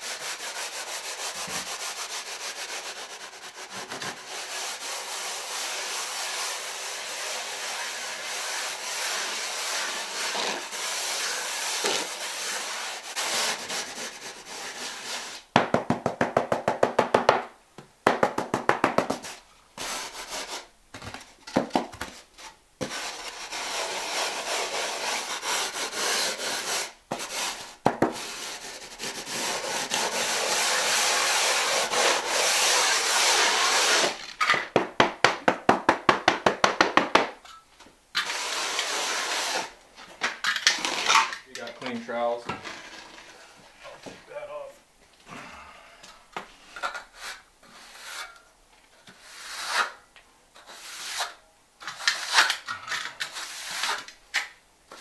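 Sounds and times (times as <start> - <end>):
trowel scraping cement: 0.4 - 15.4, 22.4 - 34.4, 38.2 - 39.8, 46.9 - 48.4, 49.0 - 50.0, 50.6 - 54.2.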